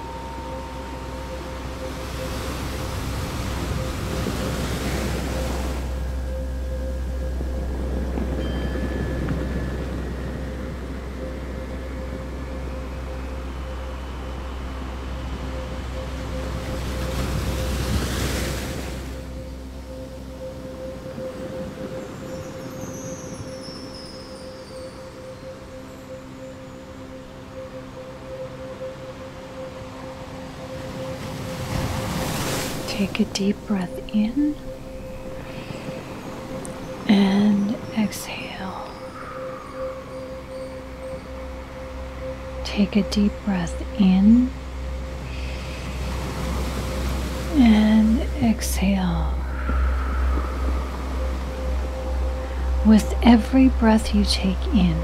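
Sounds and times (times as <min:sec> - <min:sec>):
deep low hum: 0:00.0 - 0:22.4, 0:32.9 - 0:55.0
held drone tone: 0:00.0 - 0:55.0
ocean waves: 0:00.0 - 0:55.0.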